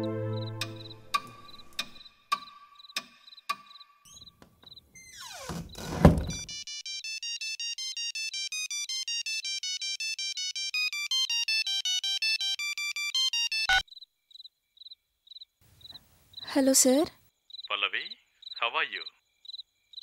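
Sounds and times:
phone ringtone beeping melody: 6.3s - 13.8s.

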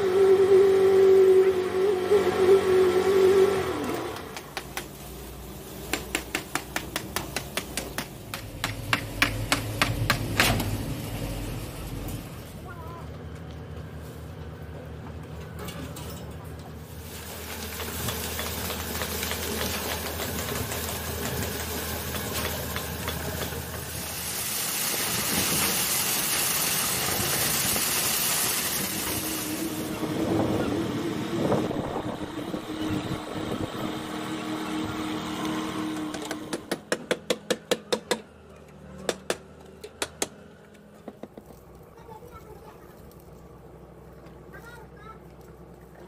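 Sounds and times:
mid-pitched machine drone: 0.0s - 4.4s, 26.4s - 36.5s
engine hum: 0.0s - 46.0s
loud hiss: 23.6s - 30.0s.

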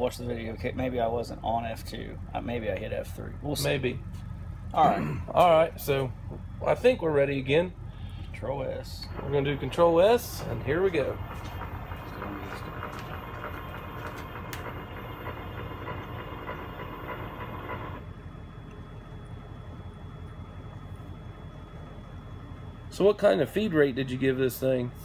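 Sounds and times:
low steady machine hum: 0.0s - 25.0s
milling machine motor whine: 0.0s - 25.0s.

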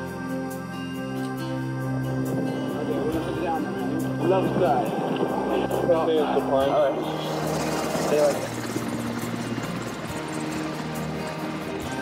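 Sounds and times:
background music: 0.0s - 12.0s
steady rushing noise: 2.0s - 12.0s.

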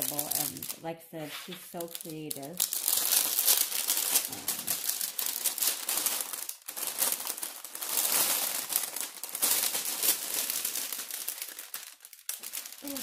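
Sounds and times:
plastic film crinkling: 0.0s - 13.0s.

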